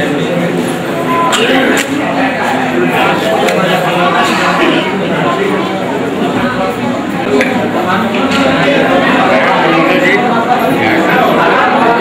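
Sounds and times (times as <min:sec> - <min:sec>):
crowd hubbub: 0:00.0 - 0:12.0.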